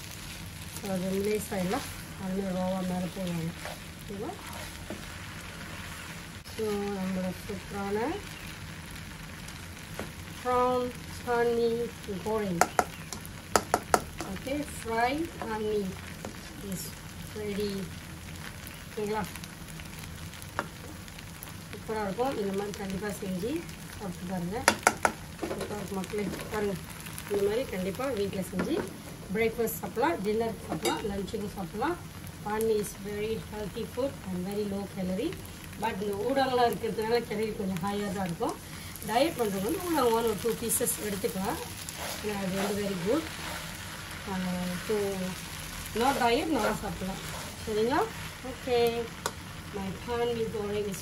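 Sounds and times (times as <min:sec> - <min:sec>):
noodles sizzling in a wok: 0:00.0 - 0:51.0
spatula stirring: 0:02.8 - 0:06.2, 0:39.4 - 0:48.4
spatula tapping a pan: 0:12.6 - 0:14.4, 0:24.6 - 0:25.7.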